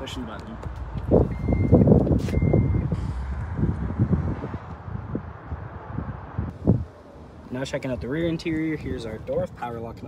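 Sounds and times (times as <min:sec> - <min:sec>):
high warning beep: 0:01.3 - 0:03.0.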